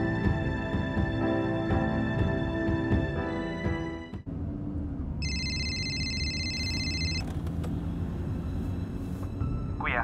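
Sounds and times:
phone ringtone: 5.2s - 7.3s
car cabin rumble: 6.7s - 10.0s.

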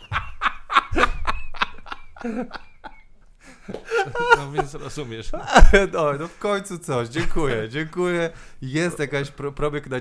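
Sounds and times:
men laughing heartily: 0.0s - 6.4s.

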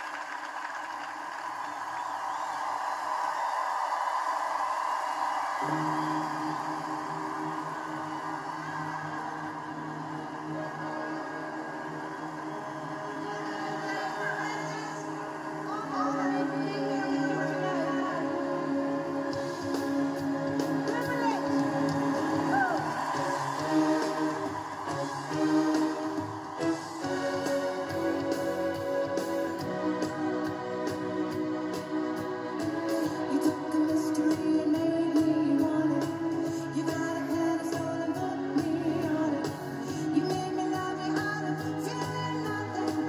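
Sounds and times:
crowd cheering: 0.0s - 43.0s
live band music from television: 0.0s - 43.0s.

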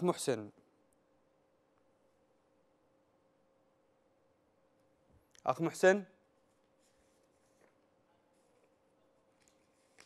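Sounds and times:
faint steady hum: 0.0s - 10.0s
paper rustling: 6.8s - 10.0s.

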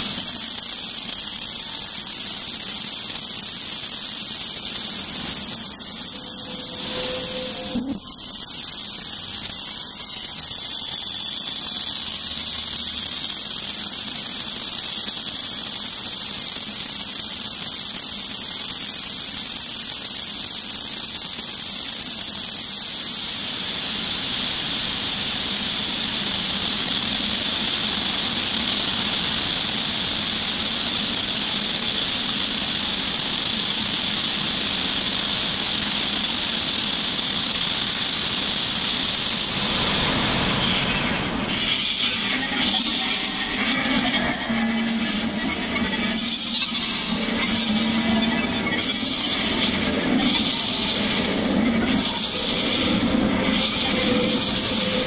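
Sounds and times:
dense hiss-like synth wash: 0.0s - 17.4s, 19.8s - 55.0s.

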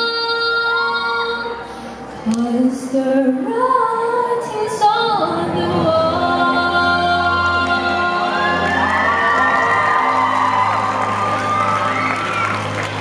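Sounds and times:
children cheering and shouting: 8.1s - 13.0s.

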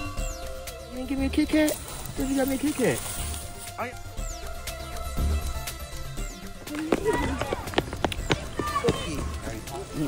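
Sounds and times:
voices talking: 0.0s - 10.0s
footsteps on pavement: 1.7s - 3.8s, 5.0s - 10.0s.

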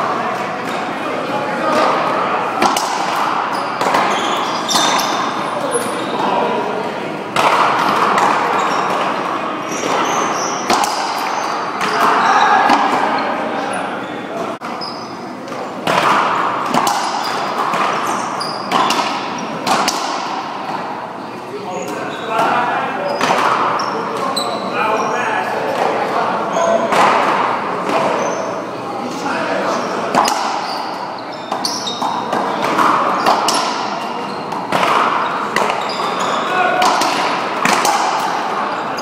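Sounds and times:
racquetball cracks echoing: 1.8s - 5.4s, 7.3s - 13.2s, 15.5s - 20.9s, 30.0s - 38.8s.

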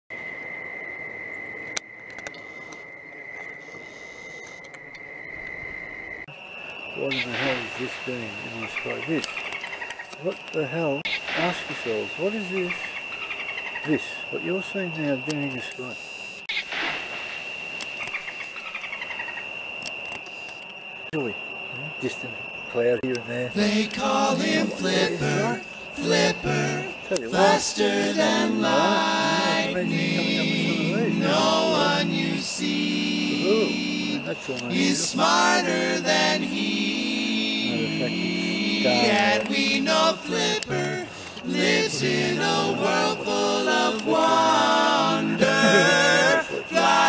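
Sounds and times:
cricket trilling: 0.1s - 47.0s
steady high-pitched tone: 19.8s - 47.0s
man's voice: 23.5s - 25.7s, 26.3s - 35.4s, 37.7s - 41.0s, 45.3s - 46.8s.

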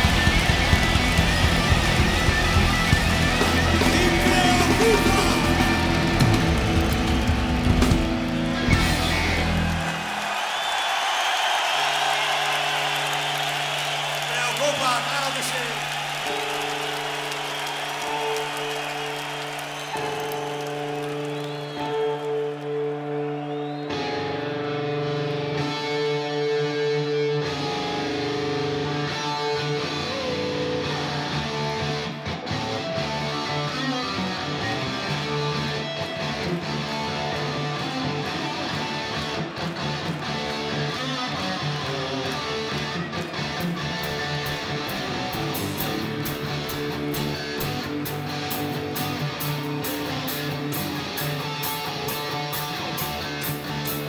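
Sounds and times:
rock band playing: 0.0s - 10.4s, 11.1s - 54.0s
crowd cheering: 0.0s - 54.0s.

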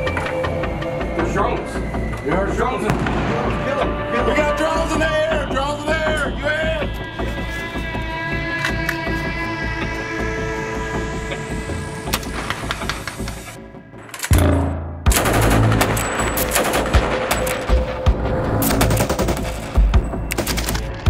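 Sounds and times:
background music: 0.0s - 21.0s
heavy low hit: 2.9s - 3.7s.

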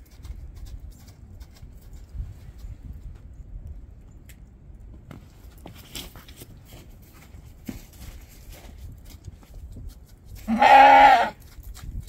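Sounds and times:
lamb bleating: 10.5s - 11.4s.

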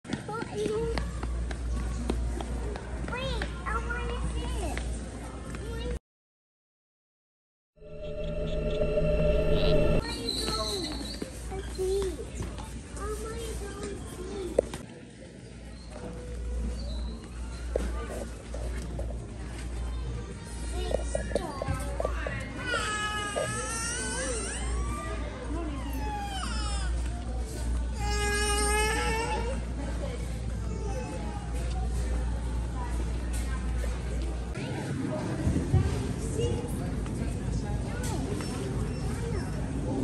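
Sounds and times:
low hum of a large store: 0.1s - 6.0s, 7.8s - 40.0s
low hum: 7.8s - 10.0s.

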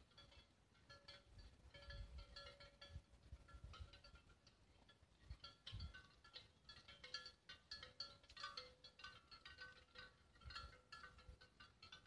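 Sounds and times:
livestock bells clinking: 0.0s - 12.0s.

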